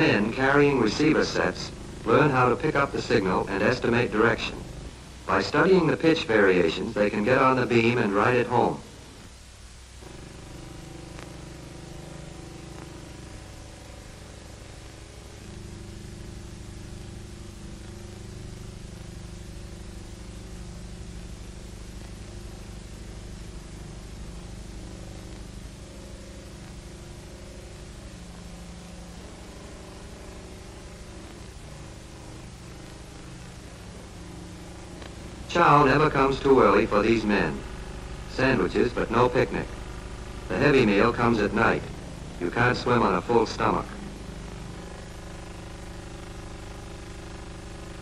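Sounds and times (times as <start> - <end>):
radio beacon buzzing tone: 0.0 - 48.0.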